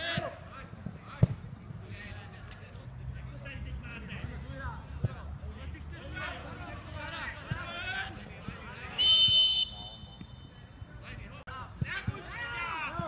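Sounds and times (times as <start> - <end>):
referee's whistle blast: 9.0 - 10.6.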